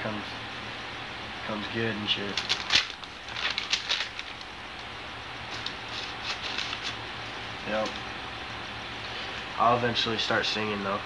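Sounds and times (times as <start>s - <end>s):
tape hiss: 0.0s - 11.0s
paper rustling: 2.3s - 4.5s, 5.5s - 7.0s.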